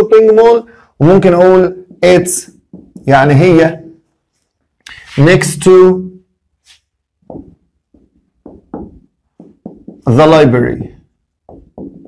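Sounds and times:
marker tapping on whiteboard: 1.8 - 3.2, 7.2 - 10.2, 11.4 - 12.0.

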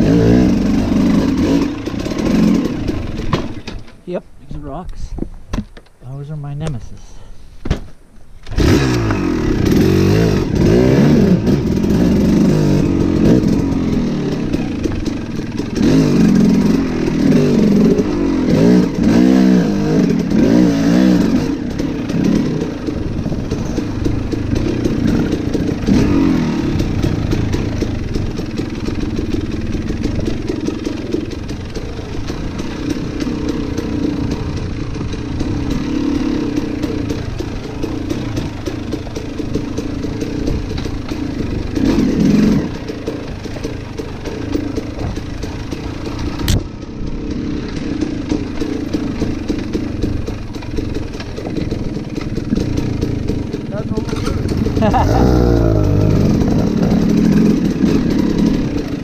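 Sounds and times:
dirt bike engine revving: 0.0 - 3.8, 8.4 - 59.0.

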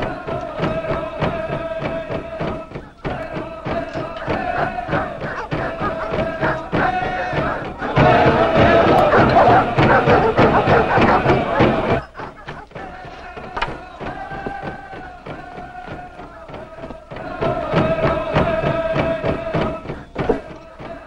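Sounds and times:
crowd chanting: 0.0 - 21.0
steady drumbeat: 0.0 - 21.0.

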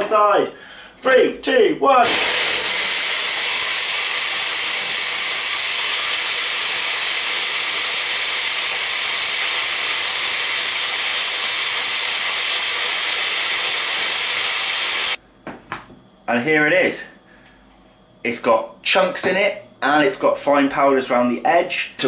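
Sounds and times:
blender grinding seeds: 2.0 - 15.2.

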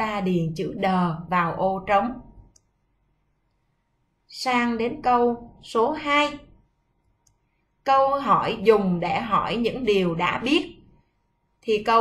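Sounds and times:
woman's voice: 0.0 - 2.4, 4.3 - 6.6, 7.9 - 10.9, 11.6 - 12.0.

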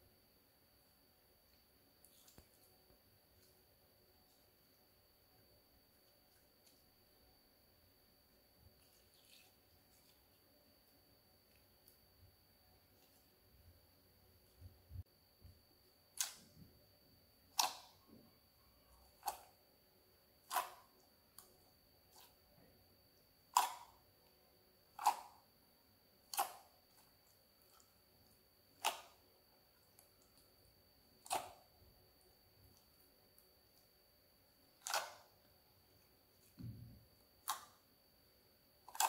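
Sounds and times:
slime squelching: 1.5 - 4.8, 8.6 - 12.1, 16.1 - 16.6, 17.5 - 19.7, 20.3 - 22.7, 23.4 - 25.5, 26.2 - 37.9
sharp slime pops: 16.1 - 16.5, 17.5 - 18.0, 20.4 - 20.9, 23.5 - 24.0, 25.0 - 25.4, 26.3 - 26.7, 28.8 - 29.2, 31.2 - 31.6, 34.8 - 35.3, 37.4 - 37.8.

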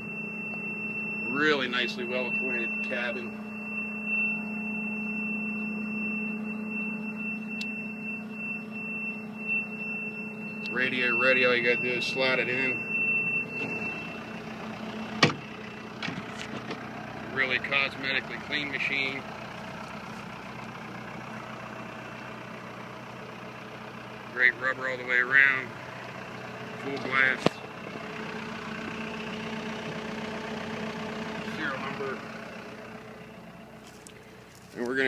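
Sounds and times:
diesel engine idling: 0.0 - 35.0.

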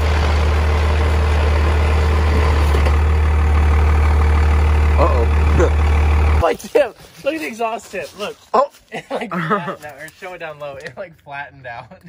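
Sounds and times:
pickup truck engine idling: 0.0 - 6.6.

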